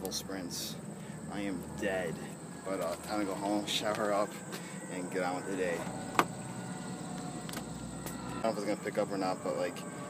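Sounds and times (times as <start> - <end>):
faint outdoor background: 0.0 - 10.0
thin high whine: 0.3 - 10.0.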